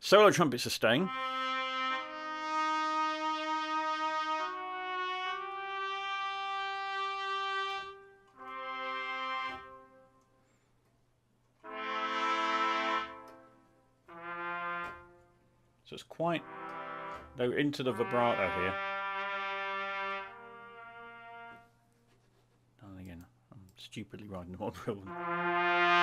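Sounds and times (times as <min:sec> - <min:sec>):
solo trumpet notes: 0:00.8 - 0:10.3, 0:11.6 - 0:15.4, 0:16.4 - 0:21.7, 0:25.1 - 0:26.0.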